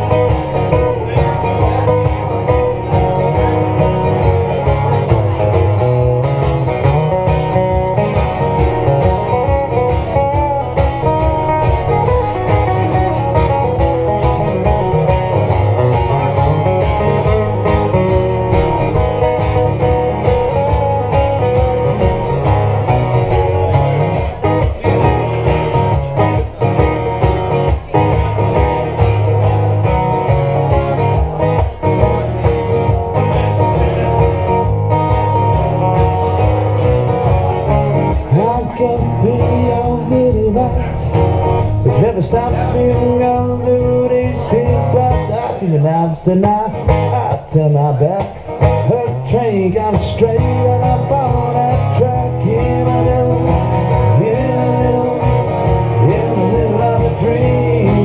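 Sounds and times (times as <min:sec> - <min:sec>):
acoustic guitars strummed: 0:00.0 - 0:58.0.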